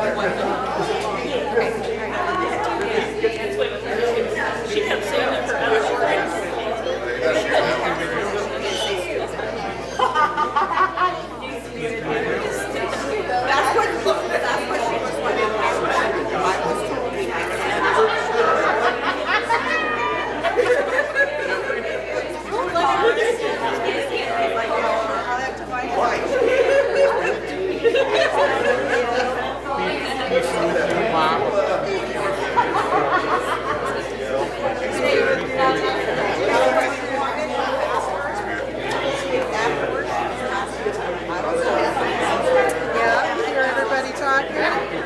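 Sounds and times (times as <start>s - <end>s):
crowd chatter in a large hall: 0.0s - 45.0s.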